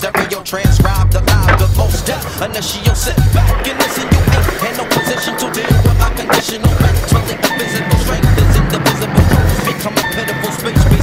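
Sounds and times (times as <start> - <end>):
hip-hop beat with deep bass: 0.0 - 11.0
skateboard clacks: 0.0 - 11.0
skateboard rolling on concrete: 0.0 - 11.0.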